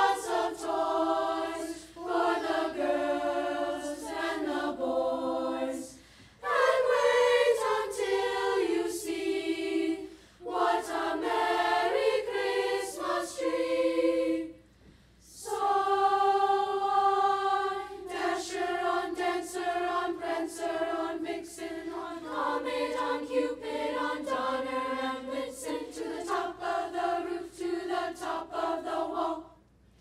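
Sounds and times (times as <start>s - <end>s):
children's choir singing: 0.0s - 14.6s, 15.2s - 29.7s.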